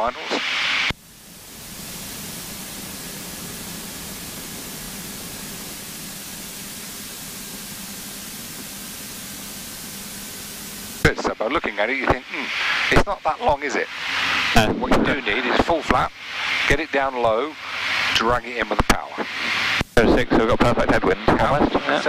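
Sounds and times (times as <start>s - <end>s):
aircraft engine noise: 0.0s - 22.0s
rushing hiss of airflow: 0.6s - 11.2s, 11.9s - 21.6s.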